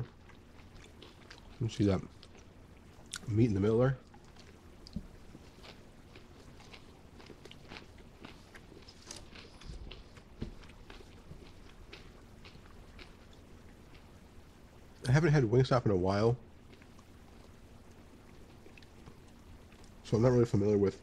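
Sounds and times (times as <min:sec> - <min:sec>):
person chewing crunchy food: 0:00.0 - 0:03.3, 0:04.0 - 0:14.4, 0:16.6 - 0:20.0.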